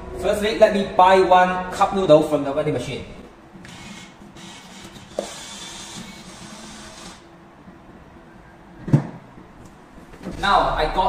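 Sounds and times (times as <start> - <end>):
banknote acceptor whirring: 3.6 - 7.3.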